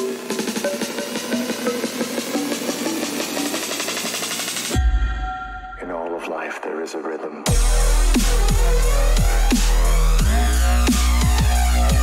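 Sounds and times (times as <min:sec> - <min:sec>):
dubstep music: 0:00.0 - 0:12.0
heavy deep bass hit: 0:07.5 - 0:12.0.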